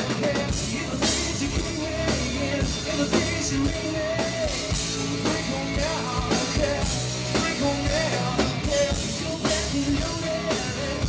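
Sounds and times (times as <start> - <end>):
drum kit: 0.0 - 11.0
electric guitar: 0.0 - 11.0
person singing into a microphone: 0.0 - 11.0.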